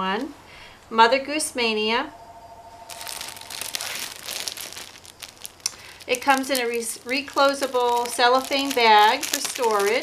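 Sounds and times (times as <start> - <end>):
cellophane bag crinkling: 2.8 - 10.0.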